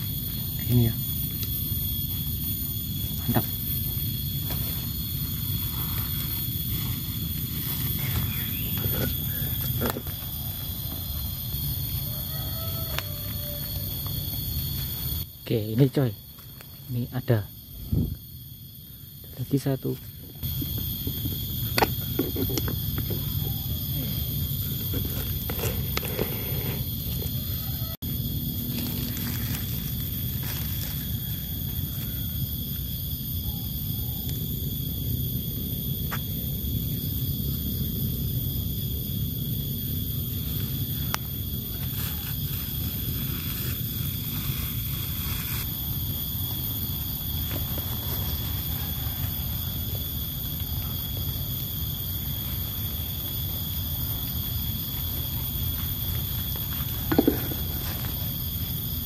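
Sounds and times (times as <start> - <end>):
high-pitched insect drone: 0.0 - 59.0
footsteps in dry leaf litter: 28.5 - 31.4.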